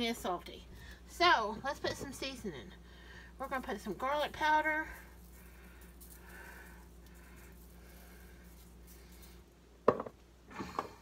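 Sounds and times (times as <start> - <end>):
spice shaker shaking: 3.3 - 9.6.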